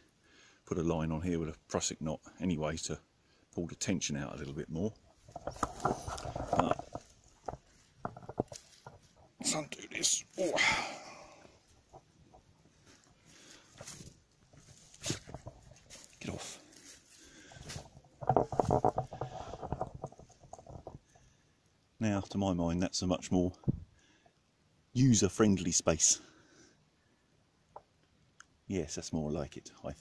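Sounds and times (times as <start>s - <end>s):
rustling over dry leaves: 5.1s - 9.2s, 10.2s - 21.0s.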